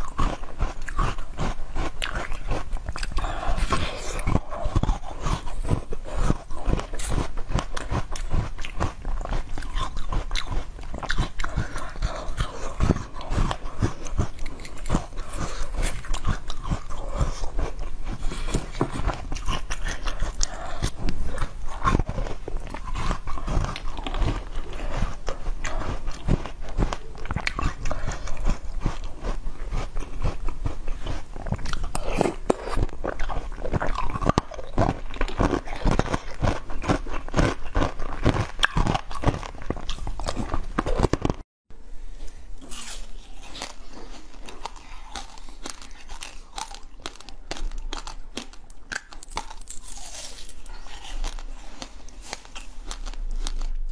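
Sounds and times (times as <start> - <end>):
biting and chewing melon: 0.0 - 41.5, 42.6 - 53.9.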